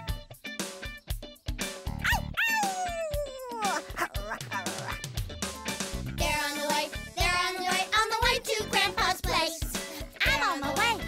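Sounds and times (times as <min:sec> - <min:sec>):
children's tv music with drums: 0:00.0 - 0:11.0.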